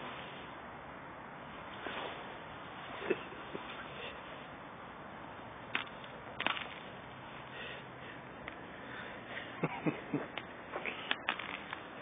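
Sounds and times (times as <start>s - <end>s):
ice cracking: 5.8s - 6.8s.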